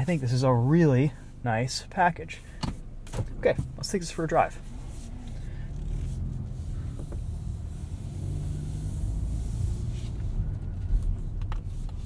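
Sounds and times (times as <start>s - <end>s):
car engine low hum: 0.0s - 12.0s.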